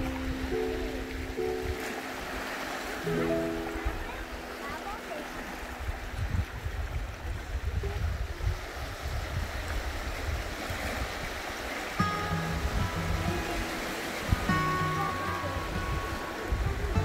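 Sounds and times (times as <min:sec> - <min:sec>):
gentle background music: 0:00.0 - 0:07.3, 0:11.8 - 0:17.0
small waves washing over sand: 0:00.0 - 0:17.0.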